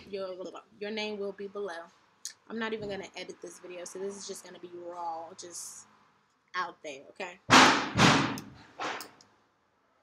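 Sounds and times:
loud pops: 7.5 - 9.0.

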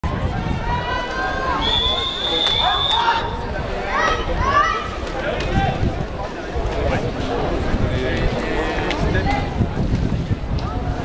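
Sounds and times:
chatter of voices: 0.1 - 11.0
long referee's whistle: 1.6 - 3.2.

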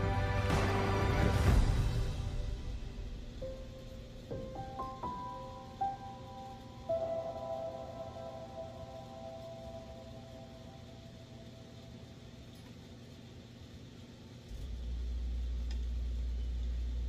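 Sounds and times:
faint background music: 0.0 - 17.0
steady low hum: 0.0 - 17.0.

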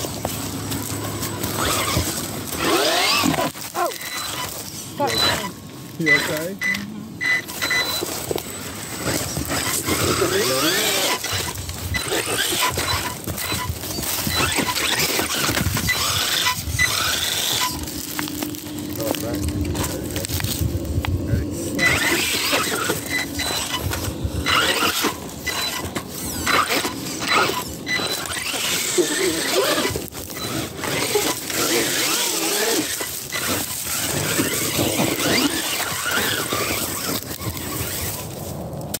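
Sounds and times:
electric motor whining: 0.0 - 38.3
tyres knocking and scraping on rock: 7.3 - 21.2.

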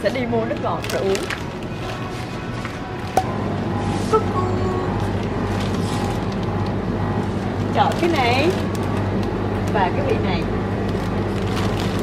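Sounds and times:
steady low hum: 3.1 - 12.0.

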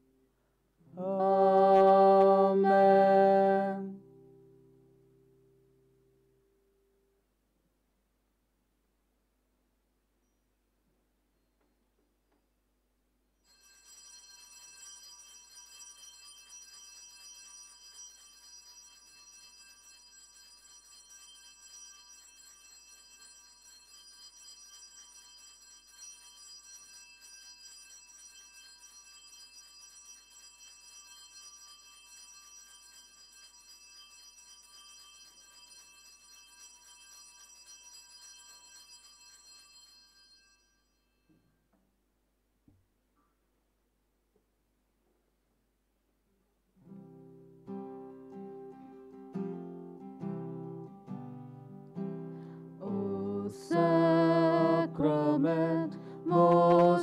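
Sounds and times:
altar bells ringing: 13.5 - 41.3.

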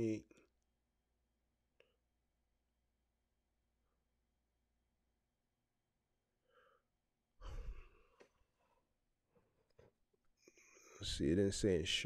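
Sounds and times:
man sighing: 7.4 - 8.2.

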